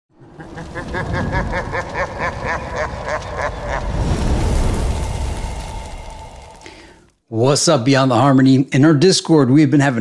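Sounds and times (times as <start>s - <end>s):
steady low rumble: 0.2s - 7.2s.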